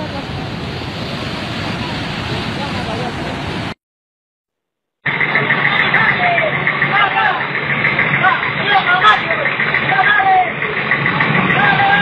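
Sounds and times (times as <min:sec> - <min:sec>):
large vehicle engine running: 0:00.0 - 0:03.8, 0:05.0 - 0:12.0
people calling out: 0:05.6 - 0:10.7, 0:11.5 - 0:12.0.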